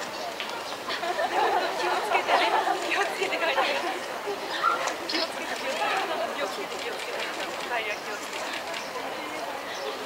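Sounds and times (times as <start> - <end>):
quiet chatter of voices: 0.0 - 10.0.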